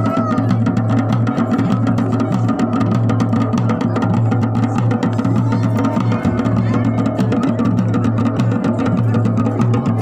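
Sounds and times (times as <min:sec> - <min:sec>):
drums in fast rhythm: 0:00.0 - 0:10.0.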